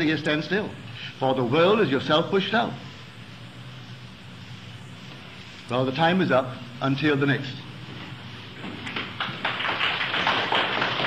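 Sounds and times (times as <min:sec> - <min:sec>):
audience applause: 0:08.8 - 0:11.0.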